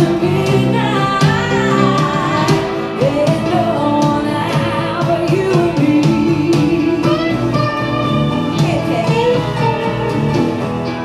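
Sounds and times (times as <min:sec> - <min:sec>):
live band playing: 0:00.0 - 0:11.0
sliding lead melody: 0:00.0 - 0:11.0.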